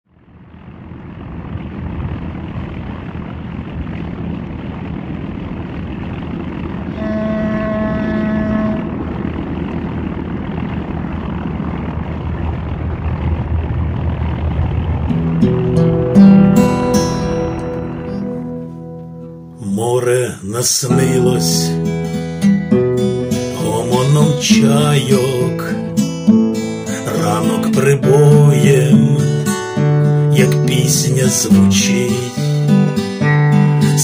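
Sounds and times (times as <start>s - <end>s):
ferry engine rumble: 0.0s - 34.0s
ship's horn: 6.1s - 12.2s, 14.0s - 19.6s
acoustic guitar: 6.9s - 9.0s, 15.0s - 34.0s.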